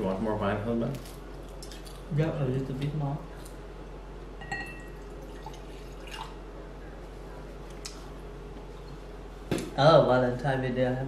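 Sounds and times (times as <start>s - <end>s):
wine pouring into a glass: 4.7s - 6.4s.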